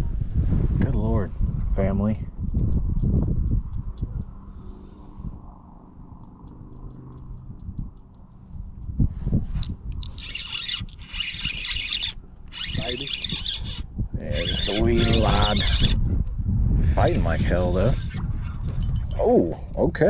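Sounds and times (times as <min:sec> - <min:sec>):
low wind rumble: 0:00.0 - 0:20.0
fishing reel whirring: 0:10.0 - 0:16.0.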